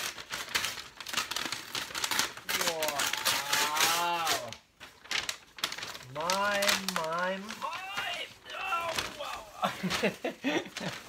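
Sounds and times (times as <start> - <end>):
paper wrapping crinkling and tearing: 0.0 - 11.0
man groaning: 7.6 - 9.9.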